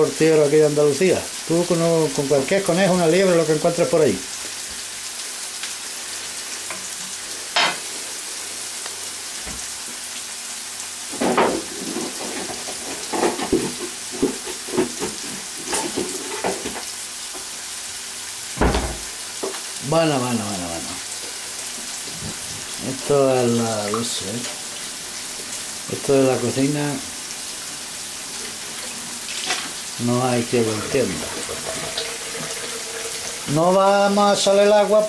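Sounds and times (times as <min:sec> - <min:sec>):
vegetables sizzling in a frying pan: 0:00.0 - 0:35.0
thump: 0:18.6 - 0:19.1.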